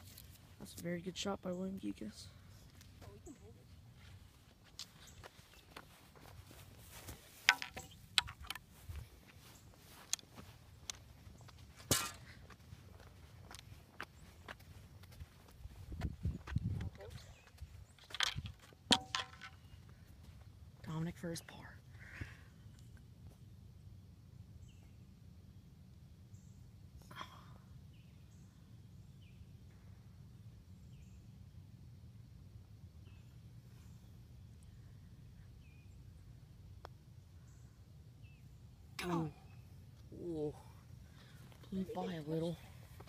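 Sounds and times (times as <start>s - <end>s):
person speaking: 41.6s - 42.8s.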